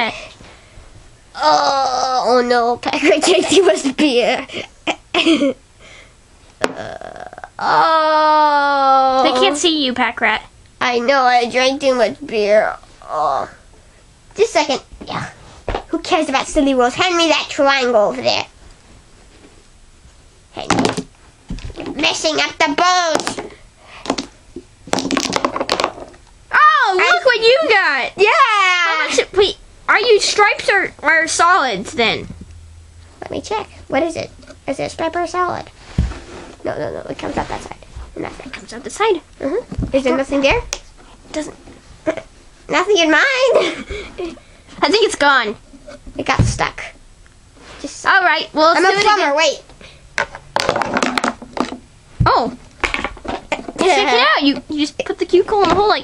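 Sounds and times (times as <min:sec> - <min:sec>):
billiard balls clacking: 0:23.1 - 0:26.3, 0:50.2 - 0:51.9, 0:52.8 - 0:54.7.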